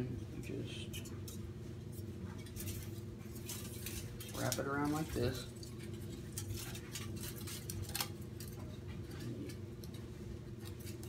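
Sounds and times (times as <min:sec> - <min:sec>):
low steady hum: 0:00.0 - 0:11.0
aluminum foil crackling: 0:00.9 - 0:11.0.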